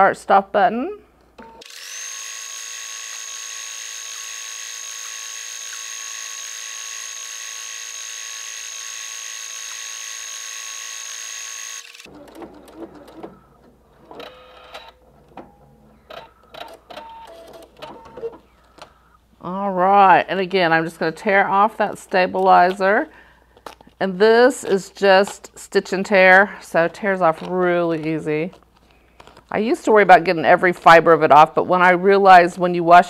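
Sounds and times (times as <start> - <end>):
sewing machine motor whine: 1.6 - 13.5.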